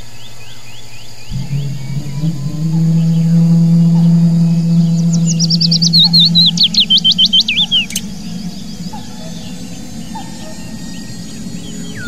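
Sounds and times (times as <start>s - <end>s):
faint bird chirps: 0.0s - 12.0s
low drone and hiss: 0.0s - 12.0s.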